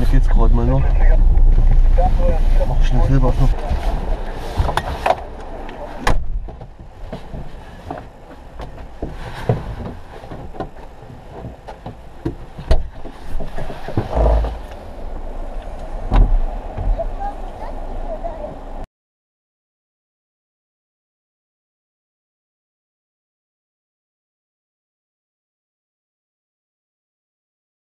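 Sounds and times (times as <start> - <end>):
low thumps: 0.0 - 5.4, 6.0 - 17.2
indistinct voices: 0.0 - 6.1.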